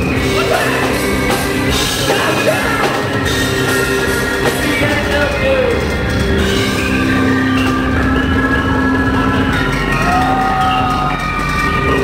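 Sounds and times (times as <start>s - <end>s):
drums: 0.0s - 12.0s
live rock band playing: 0.0s - 12.0s.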